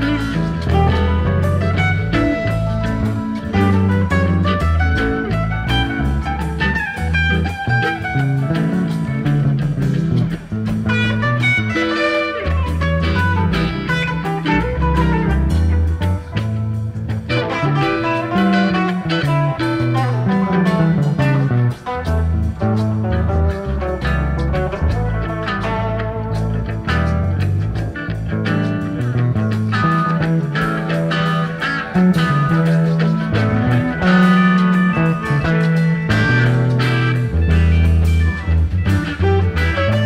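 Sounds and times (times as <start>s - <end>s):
bass guitar: 0.0s - 40.0s
drums: 0.0s - 40.0s
electric guitar lines: 0.0s - 40.0s.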